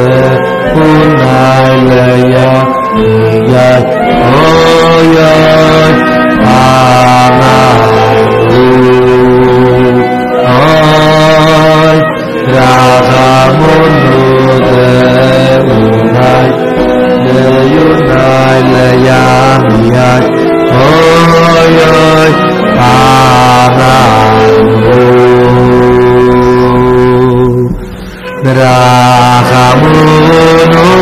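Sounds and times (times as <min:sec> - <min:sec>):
men singing slow melody: 0:00.0 - 0:31.0.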